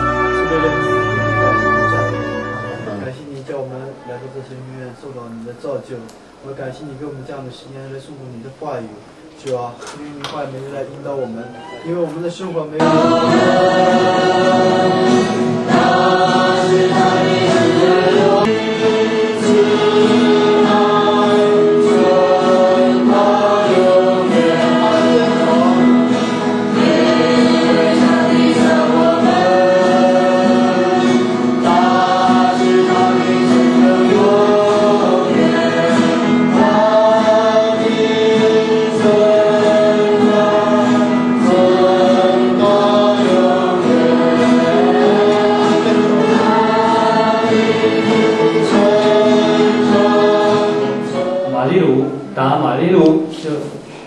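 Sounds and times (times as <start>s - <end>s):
group singing a hymn: 0.0s - 3.2s, 12.8s - 53.2s
strummed acoustic guitars: 0.0s - 3.2s, 12.8s - 52.5s.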